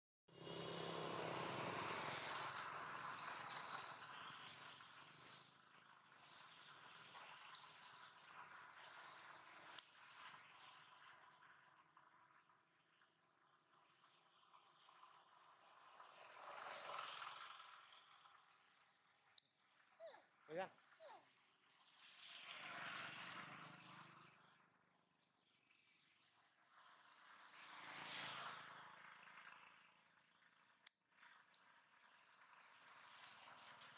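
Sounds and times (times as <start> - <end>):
faint outdoor background noise: 0.3 - 33.9
insect chirps: 1.0 - 33.9
small clicks: 19.3 - 19.7.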